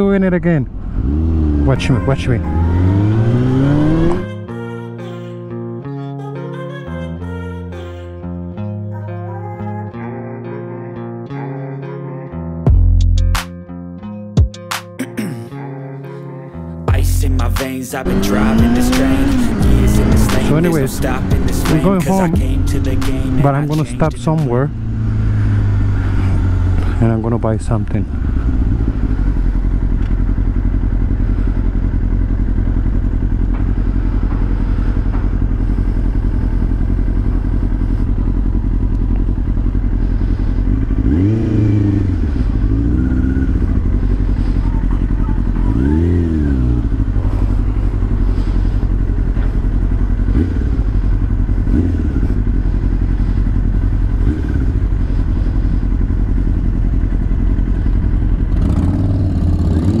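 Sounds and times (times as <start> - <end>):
motorcycle engine running at low revs: 0.0 - 4.4, 16.9 - 60.0.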